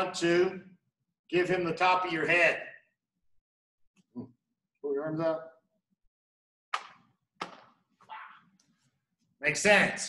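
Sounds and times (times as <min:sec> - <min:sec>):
hands slapping body: 0:06.7 - 0:07.8.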